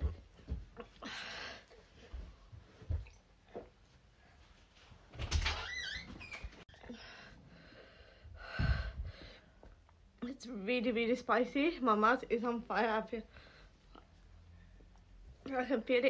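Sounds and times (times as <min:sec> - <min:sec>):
woman breathing hard: 0:01.0 - 0:01.8, 0:06.8 - 0:09.7.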